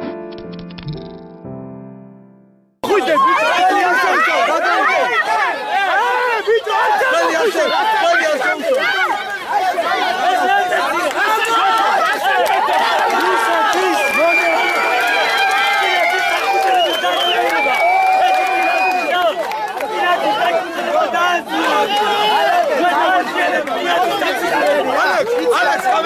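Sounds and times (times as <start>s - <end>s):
crowd of men shouting: 2.8s - 26.0s.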